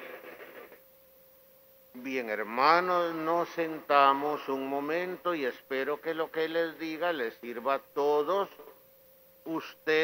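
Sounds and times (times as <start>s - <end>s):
faint mid-pitched hum: 0.0s - 10.0s.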